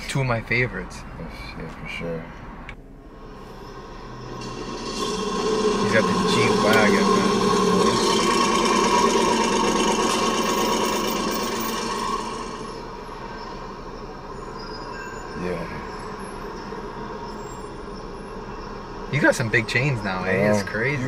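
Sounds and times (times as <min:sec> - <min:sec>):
rough rasping noise: 0:03.2 - 0:13.3.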